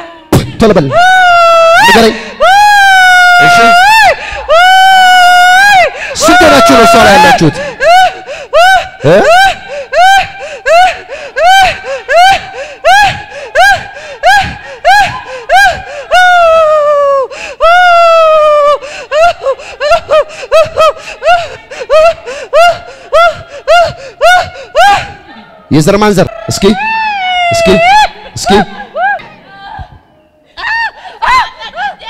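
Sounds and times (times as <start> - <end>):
woman crying out rhythmically: 0.0 - 25.3, 26.3 - 32.0
woman wailing: 0.8 - 25.4, 26.3 - 29.2.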